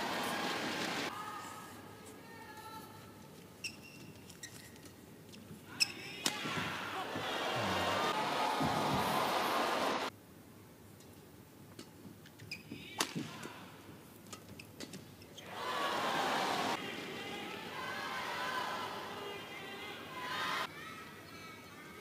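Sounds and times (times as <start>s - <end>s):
crowd cheering: 0.0s - 1.1s, 6.3s - 10.1s, 15.4s - 20.7s.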